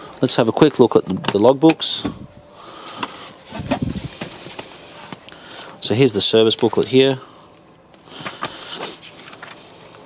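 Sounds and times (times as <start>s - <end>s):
rubbing and rustling: 3.0s - 5.3s.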